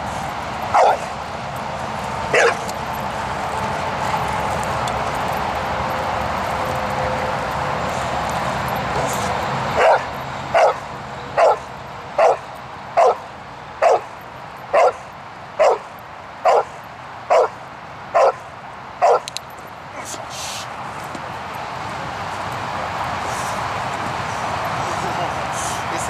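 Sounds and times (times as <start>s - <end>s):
steady background noise: 0.0s - 26.0s
dog barking: 0.7s - 1.1s, 2.3s - 2.7s, 9.8s - 10.8s, 11.4s - 12.4s, 13.0s - 13.2s, 13.8s - 14.1s, 14.7s - 15.0s, 15.6s - 17.6s, 18.2s - 18.4s, 19.0s - 19.3s.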